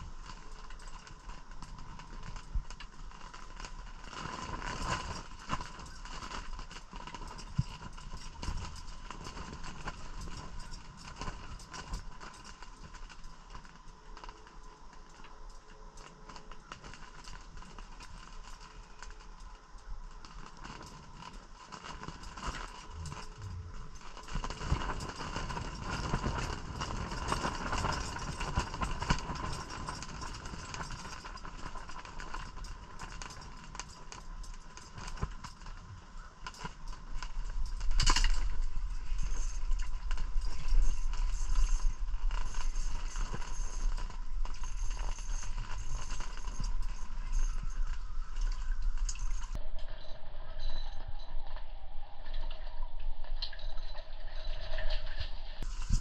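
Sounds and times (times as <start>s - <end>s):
fishing gear handling rustles: 0.1s - 49.6s
faint steady high tone: 22.4s - 32.4s, 34.3s - 56.0s.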